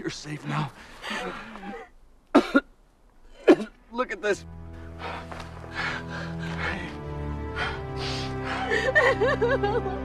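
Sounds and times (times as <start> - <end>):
breathy vocal sounds: 0.6 - 1.9
film score low sustained chord: 3.3 - 10.0.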